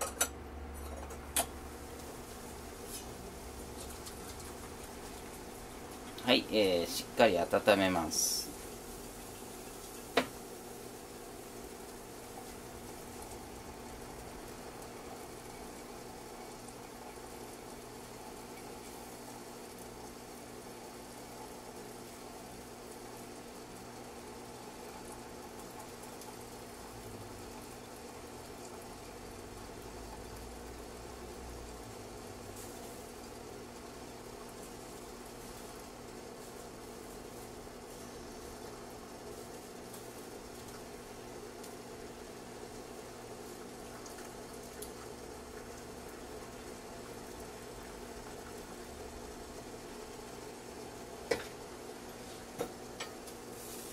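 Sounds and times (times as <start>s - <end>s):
kettle hissing and humming: 0.0s - 53.9s.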